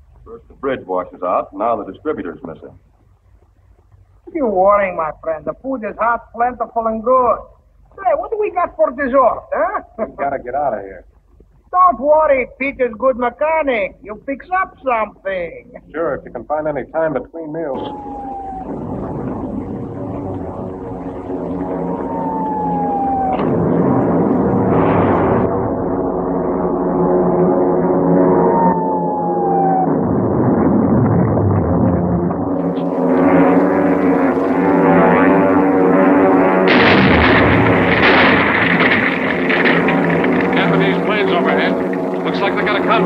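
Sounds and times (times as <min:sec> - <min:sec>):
droning engine rumble: 0:00.0 - 0:43.0
falling whistle-like glides: 0:17.7 - 0:30.9.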